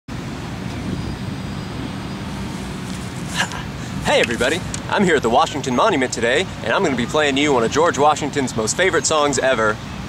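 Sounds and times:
distant road traffic rumble: 0.1 - 10.0.

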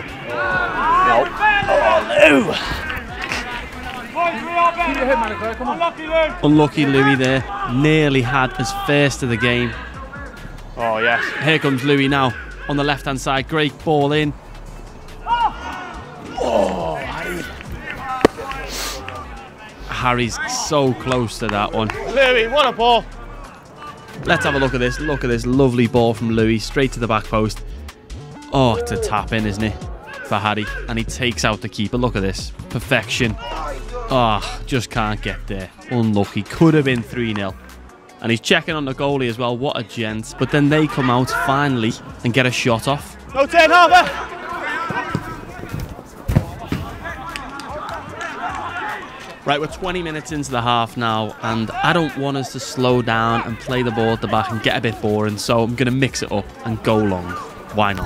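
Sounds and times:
faint voices: 0.0 - 12.8, 13.6 - 26.1, 40.3 - 58.0
players shouting: 0.0 - 27.4, 28.2 - 31.5, 32.9 - 37.8, 39.1 - 58.0
football kick thud: 44.9 - 47.1.

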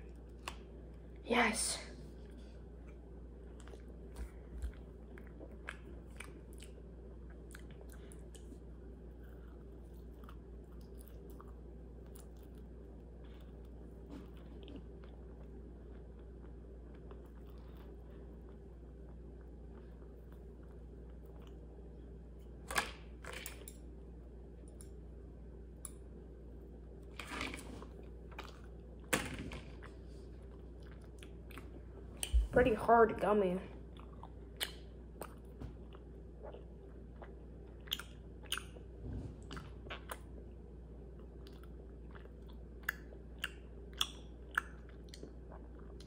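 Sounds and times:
low room hum: 0.0 - 46.0
chewing gummy candy: 2.8 - 21.8, 29.7 - 32.4, 33.8 - 46.0.

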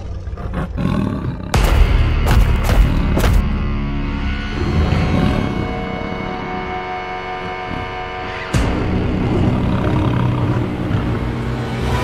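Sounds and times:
animal deep roar: 0.0 - 1.6, 4.5 - 12.0
music: 1.5 - 12.0.

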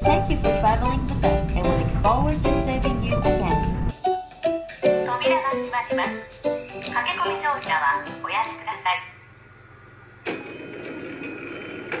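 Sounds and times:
train running noise: 0.0 - 4.0, 10.2 - 12.0.

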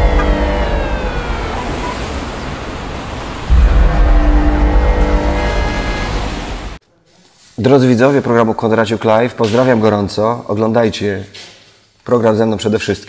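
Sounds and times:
deep rumble: 0.0 - 6.8
loud whooshing rush: 0.0 - 6.8.

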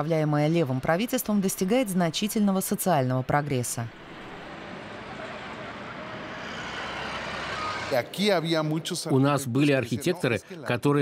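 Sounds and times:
steady rushing noise: 3.8 - 8.8.

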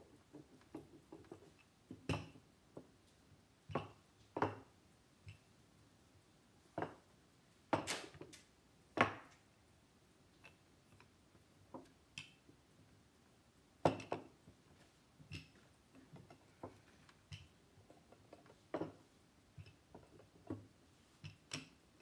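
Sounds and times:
rolling pin rolling dough: 0.0 - 7.9, 10.0 - 22.0.

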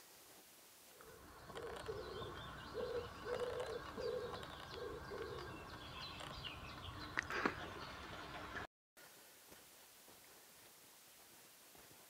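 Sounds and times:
songbirds chirping: 0.9 - 9.3
dove cooing: 1.0 - 6.4.

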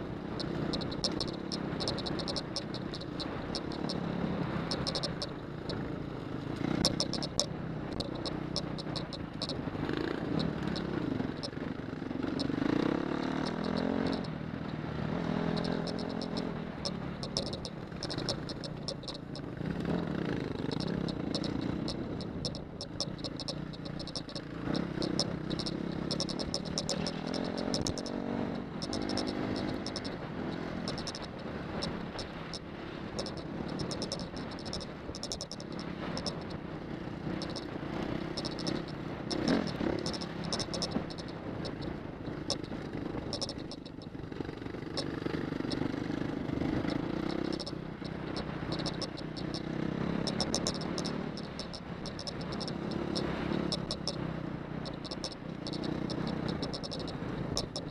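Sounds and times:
motorcycle engine revving: 0.0 - 57.9
motorcycle rattling over rough ground: 0.0 - 57.9.

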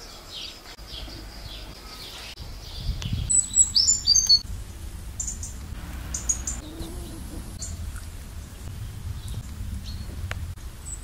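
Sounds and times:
small birds chirping: 0.0 - 11.0
low rumble: 2.4 - 11.0.

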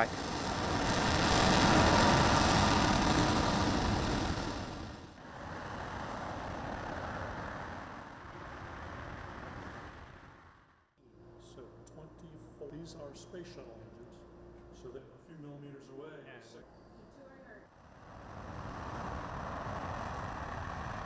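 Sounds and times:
rocket engine exhaust roar: 0.0 - 10.9, 17.7 - 21.0.

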